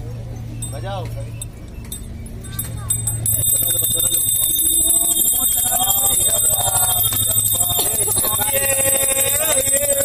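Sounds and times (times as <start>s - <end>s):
voices of people: 0.0s - 10.0s
brass hand bell ringing: 2.5s - 10.0s.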